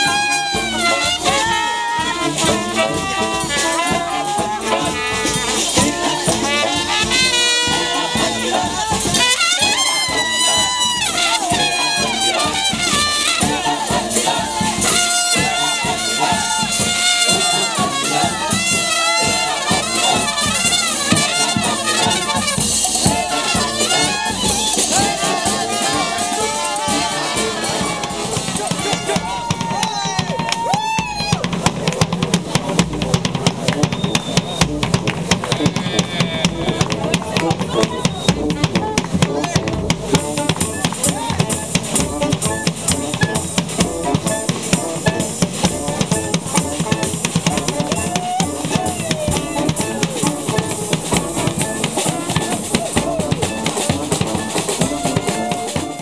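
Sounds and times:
brass band playing: 0.0s - 56.0s
horn lines: 0.0s - 56.0s
snare and bass drum beat: 0.0s - 56.0s.

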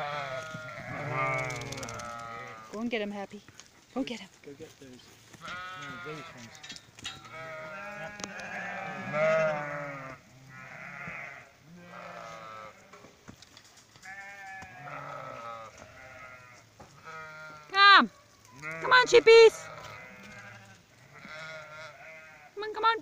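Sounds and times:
sheep bleating: 0.0s - 2.8s, 5.4s - 13.0s, 14.0s - 23.0s.

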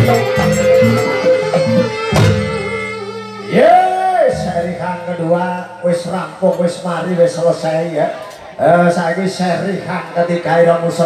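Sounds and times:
gamelan music: 0.0s - 6.7s.

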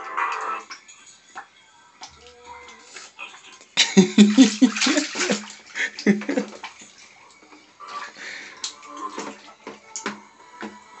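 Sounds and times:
faint music: 0.0s - 11.0s
water splashing in a bathtub: 0.0s - 11.0s.

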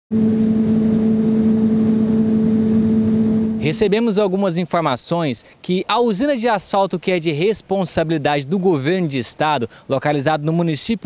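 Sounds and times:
machinery steady hum: 0.1s - 5.6s
rushing noise: 0.2s - 4.2s.

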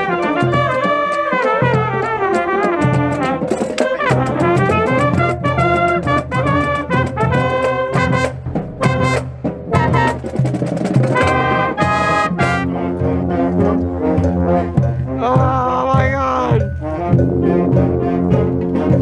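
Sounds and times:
brass band playing: 0.0s - 19.0s
high brass line bending down: 0.0s - 19.0s
trumpet staccato notes: 0.0s - 19.0s.

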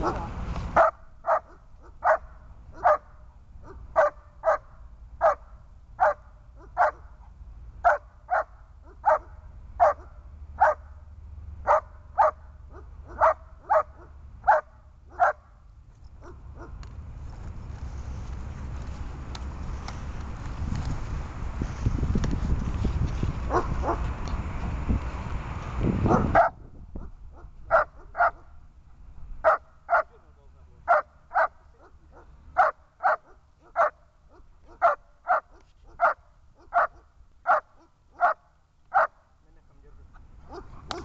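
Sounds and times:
dog barking: 0.8s - 7.1s, 7.8s - 10.9s, 11.7s - 15.5s, 23.5s - 24.0s, 26.1s - 28.5s, 29.4s - 30.2s, 30.9s - 39.2s, 40.5s - 41.0s.

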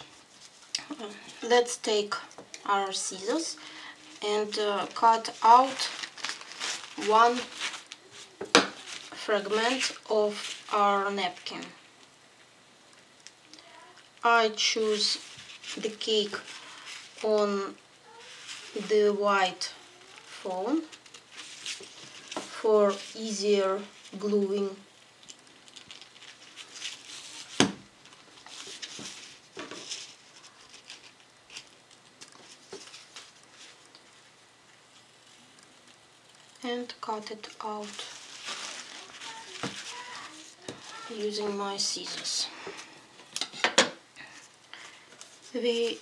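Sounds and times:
paper napkin rustling: 2.9s - 11.8s, 14.6s - 34.3s, 34.9s - 43.0s.

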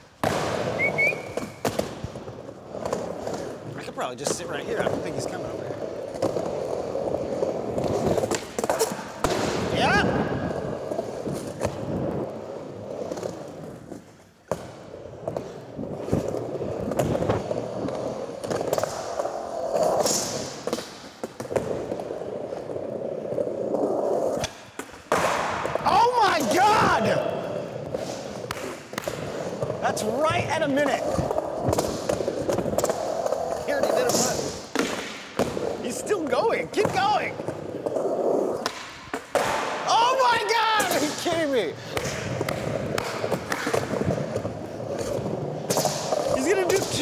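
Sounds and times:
skateboard wheels rolling on wood: 0.0s - 47.0s
skateboard clacks: 27.8s - 47.0s.

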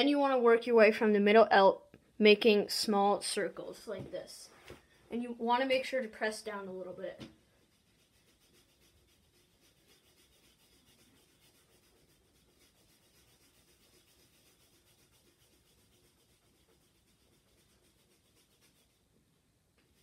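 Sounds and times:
paper towel rubbing on paper: 7.6s - 19.1s.

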